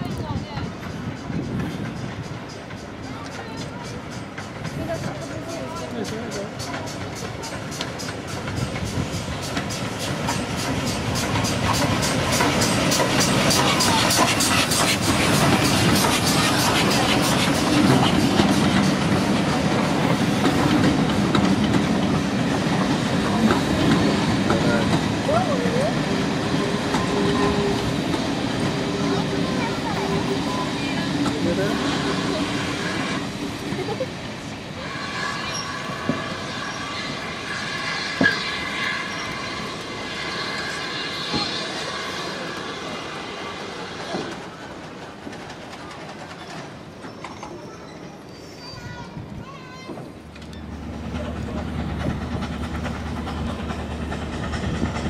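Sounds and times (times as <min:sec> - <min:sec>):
coaches clattering over rail joints: 0:00.0 - 0:34.0, 0:44.0 - 0:55.0
steam locomotive exhaust beats: 0:00.0 - 0:46.3, 0:49.2 - 0:55.0
wheels squealing: 0:23.2 - 0:33.2, 0:34.8 - 0:43.0, 0:46.1 - 0:49.2.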